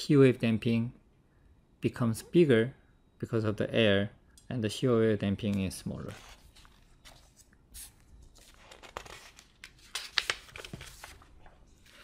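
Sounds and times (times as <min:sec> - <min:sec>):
paper rustling: 0:06.0 - 0:12.0.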